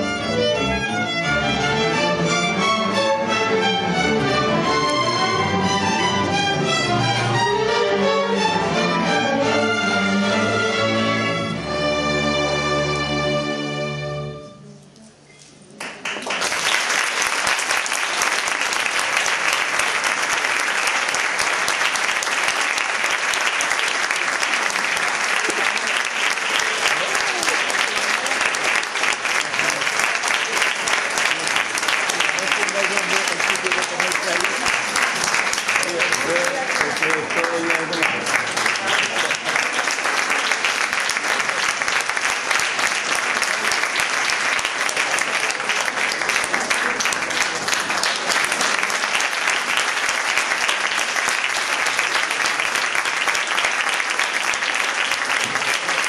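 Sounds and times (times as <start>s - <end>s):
audience applause: 15.8s - 56.0s.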